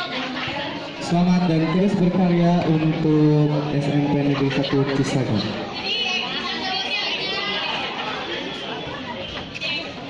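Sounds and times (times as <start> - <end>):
chatter of many voices: 0.0 - 10.0.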